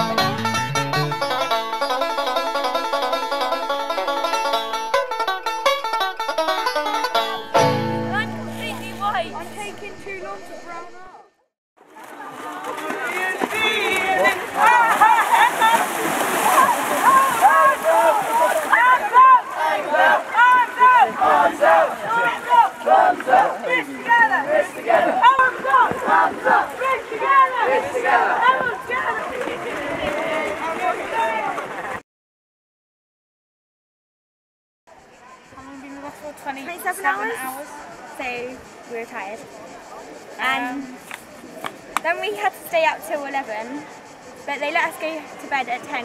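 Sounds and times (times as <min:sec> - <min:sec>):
water splashing: 0:11.8 - 0:27.6
children shouting and yelling: 0:12.2 - 0:31.6.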